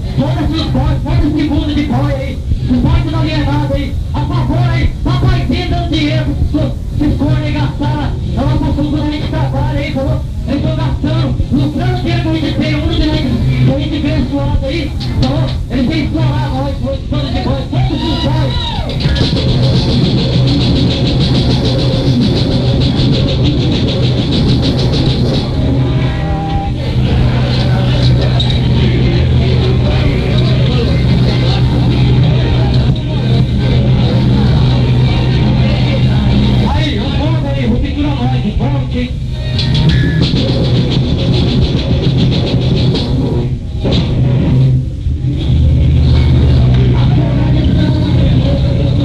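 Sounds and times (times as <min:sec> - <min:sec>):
bass guitar: 0:00.0 - 0:49.0
distorted electric guitars: 0:00.0 - 0:49.0
fast drum beat on cymbals: 0:11.4 - 0:26.1, 0:39.5 - 0:43.6.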